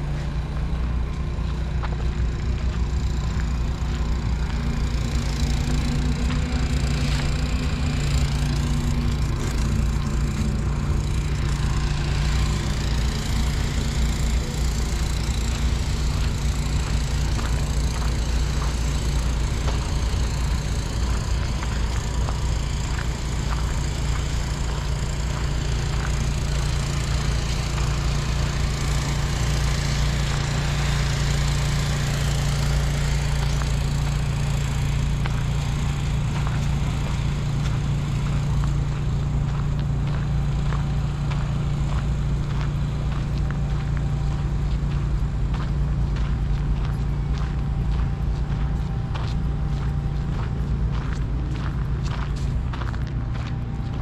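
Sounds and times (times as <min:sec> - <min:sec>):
low mechanical hum: 0:00.0 - 0:54.0
outdoor noise: 0:00.0 - 0:54.0.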